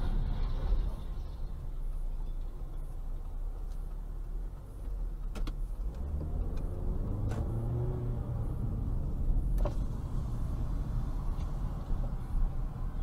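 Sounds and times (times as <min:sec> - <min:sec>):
car engine and road rumble: 0:00.0 - 0:13.0.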